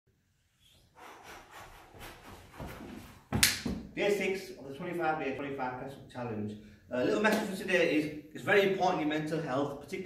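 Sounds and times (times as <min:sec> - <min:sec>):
footsteps on carpet: 0:01.9 - 0:03.4
sharp slap: 0:03.3 - 0:03.9.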